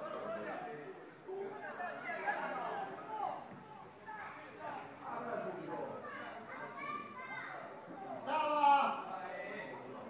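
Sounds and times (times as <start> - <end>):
spectators talking and calling out: 0.0 - 10.0.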